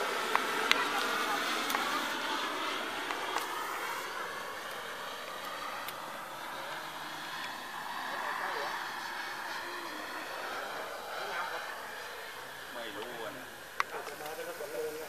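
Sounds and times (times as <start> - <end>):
model jet engine whine: 0.0 - 15.0.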